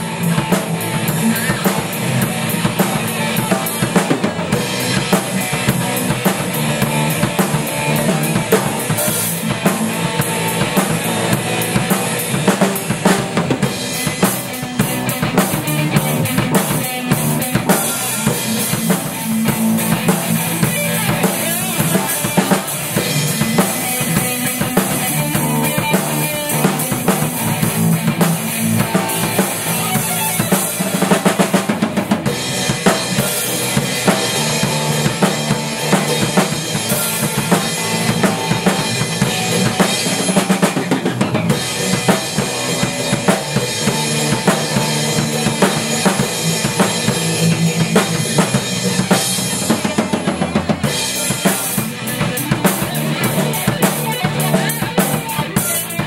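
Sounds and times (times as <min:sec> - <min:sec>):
drum hits: 0:00.0 - 0:44.6
rock band playing: 0:00.0 - 0:56.0.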